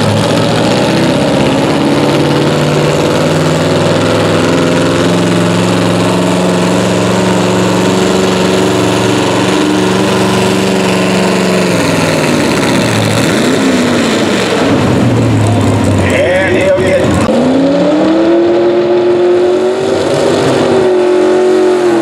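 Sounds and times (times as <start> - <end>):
tractor engine running hard: 0.0 - 22.0.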